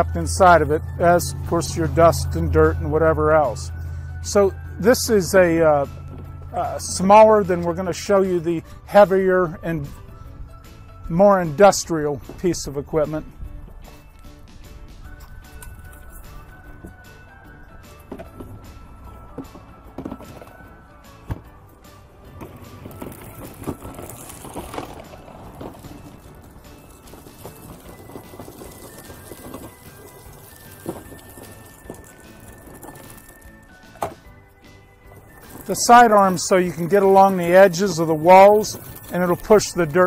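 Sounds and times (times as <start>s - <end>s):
background music: 0.0s - 40.0s
push sweeper brushing concrete: 22.0s - 34.2s, 34.8s - 40.0s.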